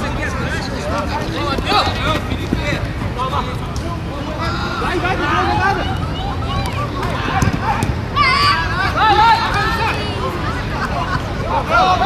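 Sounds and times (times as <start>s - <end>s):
people shouting: 4.4s - 10.3s.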